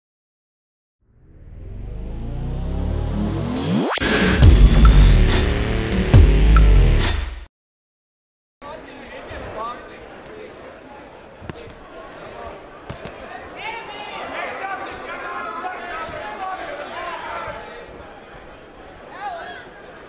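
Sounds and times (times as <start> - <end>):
crowd shouting: 12.1 - 20.0.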